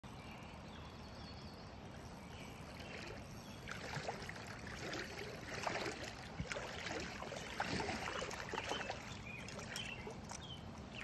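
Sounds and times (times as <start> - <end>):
lake water splashing and lapping: 1.8 - 11.0.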